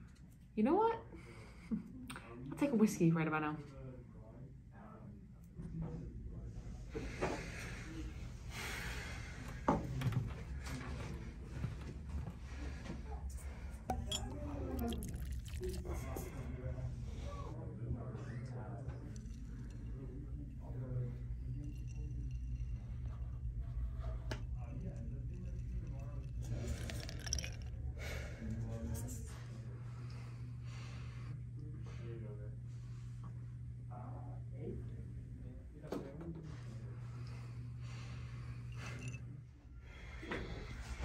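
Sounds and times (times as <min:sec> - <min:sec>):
low room hum: 0:00.0 - 0:41.0
glass clink: 0:13.9 - 0:15.8
whiskey pouring into a glass: 0:13.9 - 0:16.3, 0:19.0 - 0:27.8.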